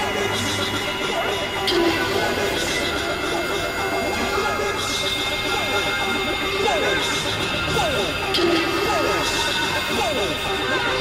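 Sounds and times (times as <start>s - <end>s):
high synthesizer tones: 0.0s - 11.0s.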